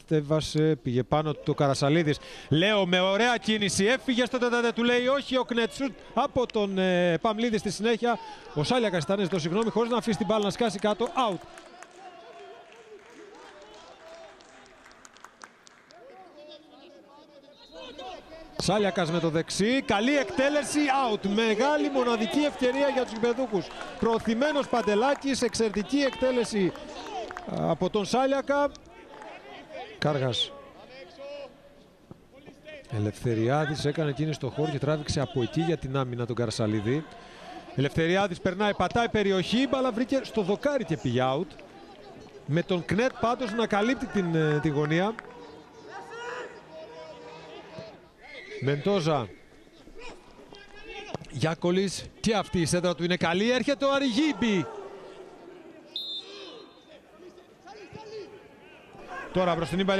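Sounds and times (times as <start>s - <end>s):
crowd noise: 0.0s - 59.9s.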